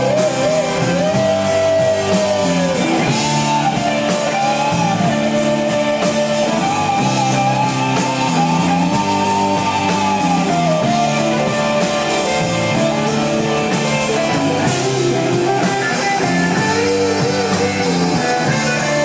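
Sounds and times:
rock band playing live: 0.0s - 19.0s
sliding electric guitar lead melody: 0.0s - 19.0s
steady cymbal beat: 0.0s - 19.0s.

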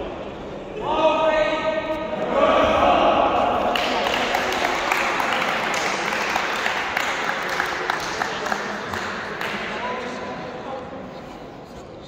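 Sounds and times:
sharp hand claps and slaps: 3.7s - 9.9s.

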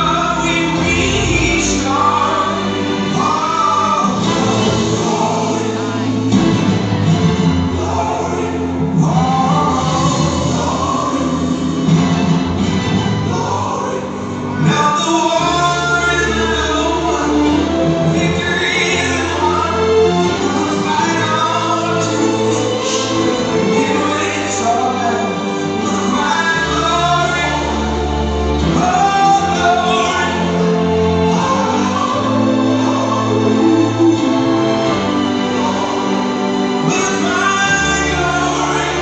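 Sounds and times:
gospel choir singing: 0.0s - 39.0s
grand piano accompaniment: 0.0s - 39.0s.

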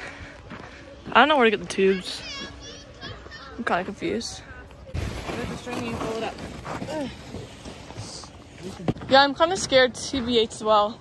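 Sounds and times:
outdoor hubbub: 0.0s - 11.0s.

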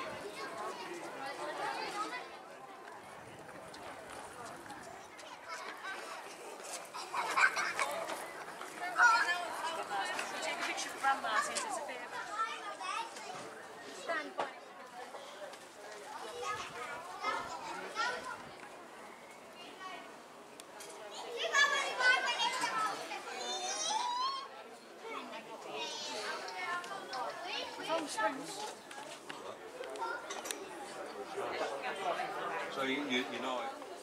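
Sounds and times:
people talking and calling out: 0.0s - 34.0s.

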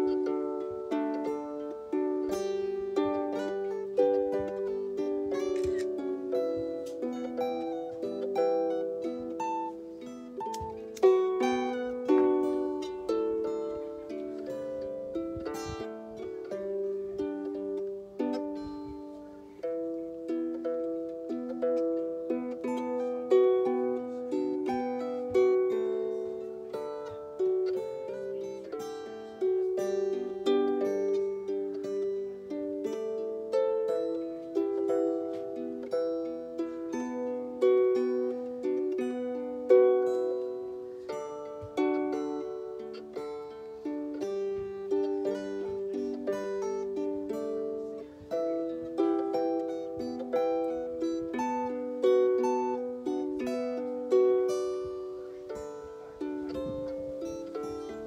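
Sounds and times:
acoustic guitar: 0.0s - 17.4s, 18.0s - 58.0s
harp plucked melody and chords: 0.0s - 58.0s.

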